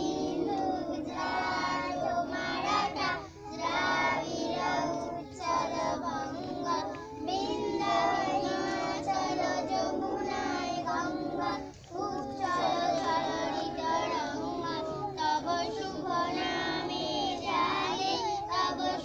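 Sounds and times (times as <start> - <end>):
children singing together: 0.0 - 19.0.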